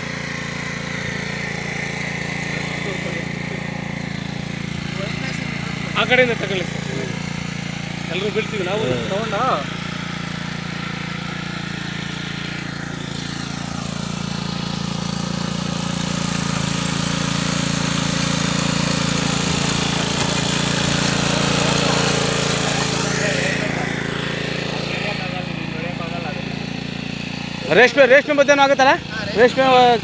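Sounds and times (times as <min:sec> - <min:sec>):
small petrol engine running: 0:00.0 - 0:30.0
tines churning soil: 0:00.0 - 0:30.0.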